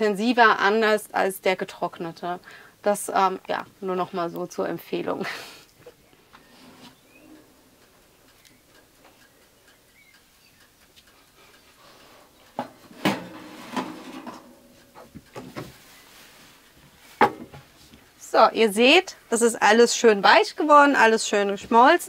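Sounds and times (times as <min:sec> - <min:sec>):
metal dish clunking and scraping: 0:12.6 - 0:15.7.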